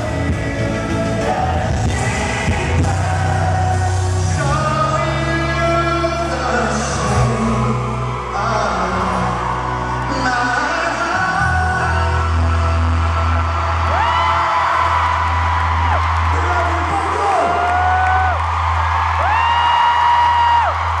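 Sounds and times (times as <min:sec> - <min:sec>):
live pop vocals over a pa: 0:00.0 - 0:18.4
fans screaming: 0:01.6 - 0:21.0.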